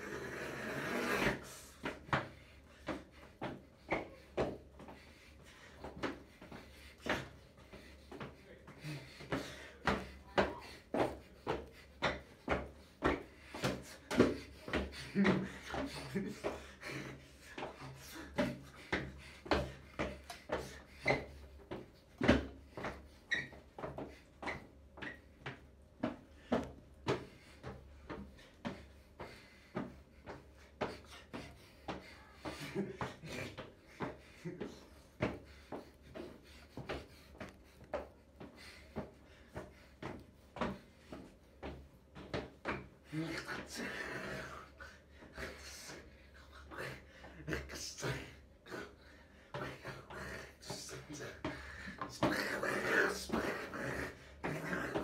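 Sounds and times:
laughter: 15.0s - 17.2s, 32.4s - 33.8s.

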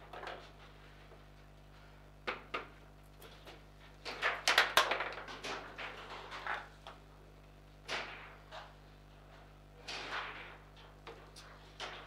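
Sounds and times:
table football clacks and knocks: 2.2s - 2.8s.

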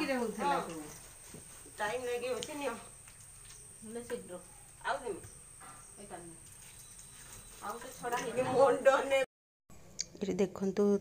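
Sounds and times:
crickets trilling: 0.0s - 9.2s.

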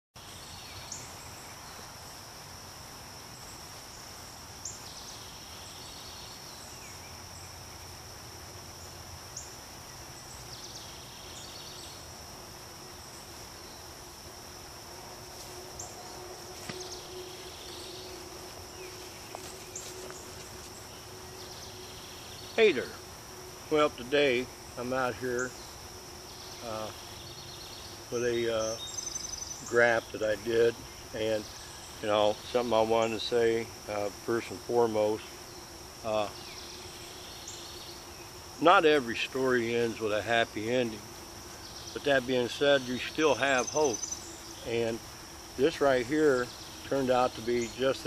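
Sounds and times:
buzzy insect call: 0.2s - 48.0s
high-pitched insect trill: 0.2s - 48.0s.

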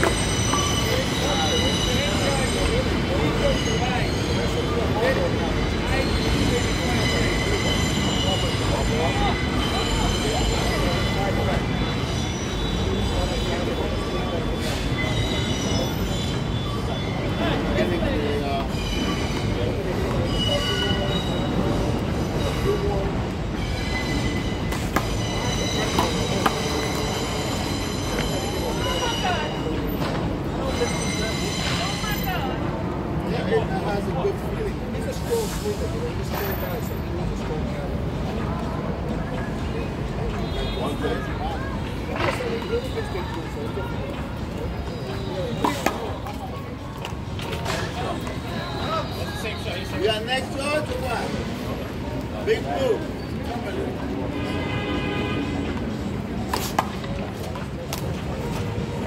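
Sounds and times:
wheel squeal: 0.0s - 32.6s
train rumbling on rails: 0.0s - 40.4s.

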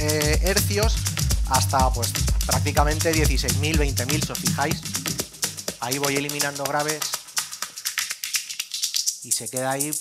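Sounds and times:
filtered electronic dance music: 0.0s - 10.0s
high-pitched hi-hat ticks: 0.0s - 10.0s.

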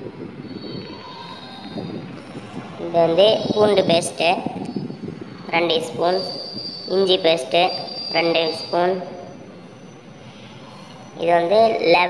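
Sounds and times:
faint high whine: 0.0s - 12.0s
low background rumble: 0.0s - 12.0s.

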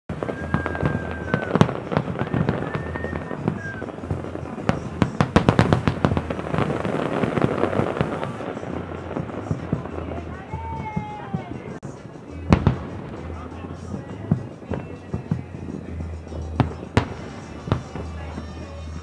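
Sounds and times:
long high tone: 0.1s - 5.7s
distant fireworks bangs: 0.1s - 19.0s.

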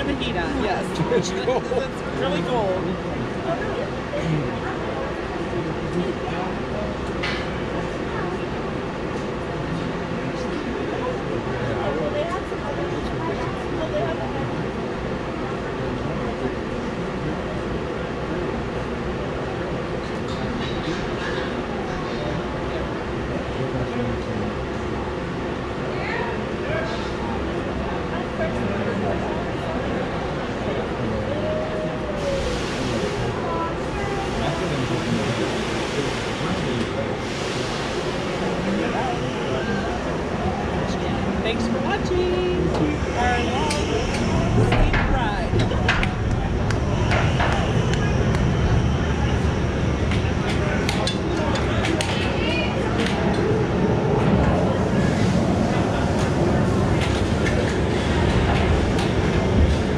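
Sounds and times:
faint voices: 0.0s - 59.9s
roller coaster train rumbling: 0.0s - 59.9s.

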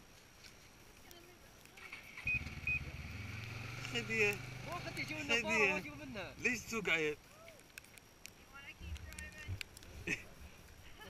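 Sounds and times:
short high beeps: 2.2s - 2.9s.

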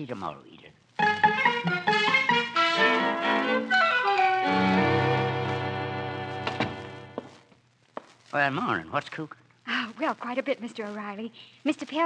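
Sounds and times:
held organ chord: 1.0s - 7.2s.

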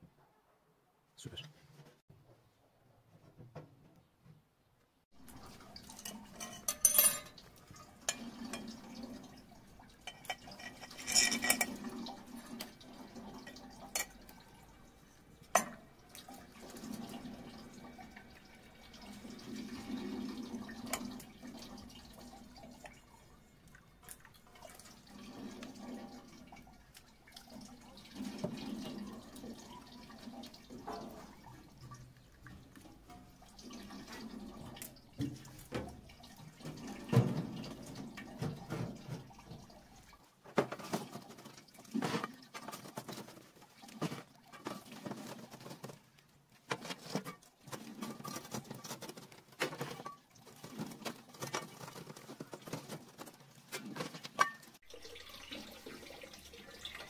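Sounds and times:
water trickling and splashing: 5.1s - 57.0s
sharp metallic clinks and knocks: 6.0s - 7.4s.

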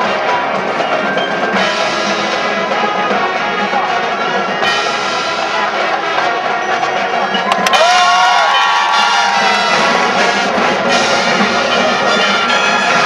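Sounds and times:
marching band playing: 0.0s - 13.0s.

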